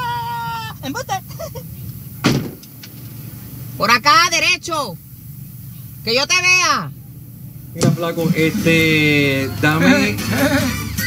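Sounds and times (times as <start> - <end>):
steady low hum: 0.0 - 11.0
car door shutting: 2.2 - 3.3.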